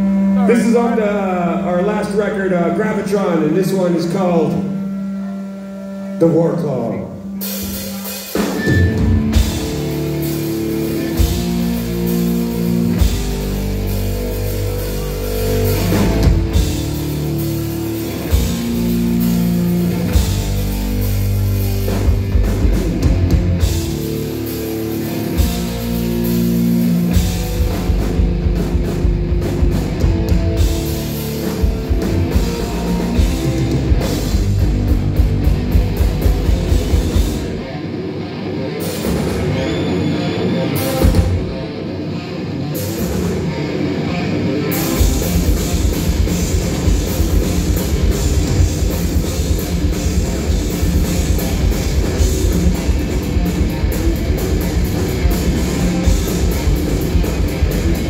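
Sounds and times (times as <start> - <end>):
loud fast rock instrumental: 0.0 - 58.0.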